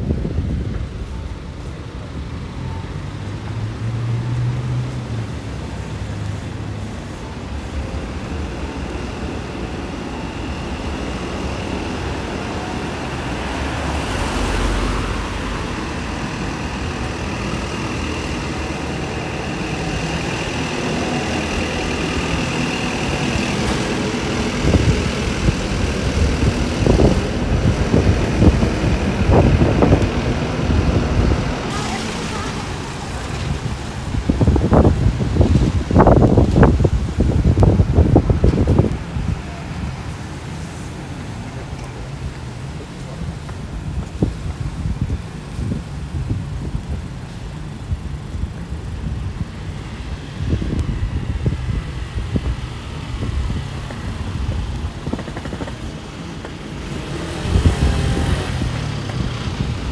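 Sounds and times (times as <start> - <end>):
wind buffeting microphone: 0.0 - 2.6, 5.0 - 59.9
cars and trucks passing: 0.0 - 59.9.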